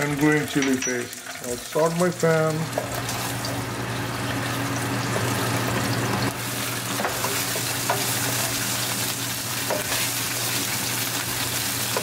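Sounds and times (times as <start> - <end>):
paste sizzling in oil: 1.2 - 12.0
exhaust fan humming: 1.8 - 12.0.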